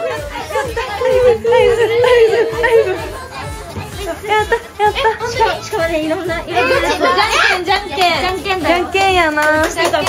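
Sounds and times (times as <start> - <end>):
young women chattering: 0.0 - 10.0.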